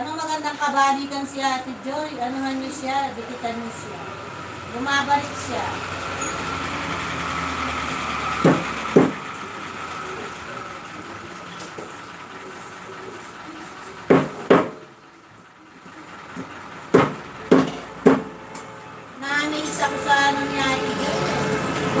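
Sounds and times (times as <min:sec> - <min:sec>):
knife chopping on wooden board: 0:17.0 - 0:18.2.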